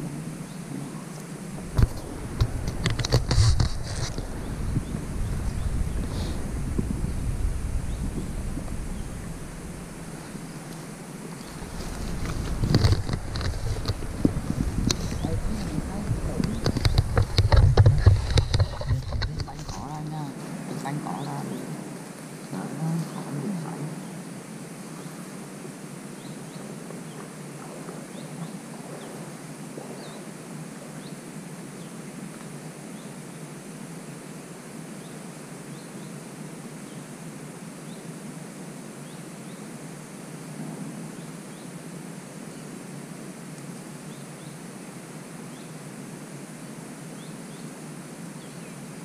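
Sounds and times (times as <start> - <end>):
background hiss: 0.0 - 49.0
rustling handling noise: 1.6 - 4.4, 10.2 - 19.9.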